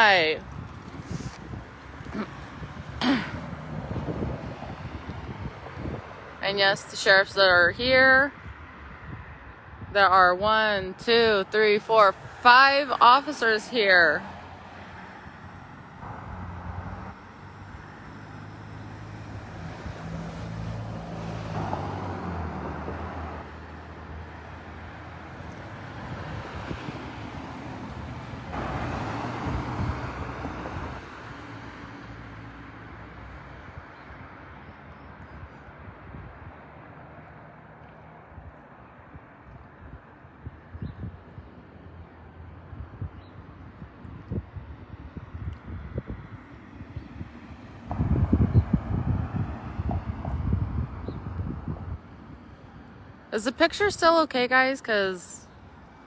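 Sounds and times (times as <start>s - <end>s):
wind buffeting microphone: 0.0s - 13.1s, 25.4s - 31.4s, 35.1s - 36.7s, 38.2s - 53.2s
cars passing close by: 0.0s - 56.0s.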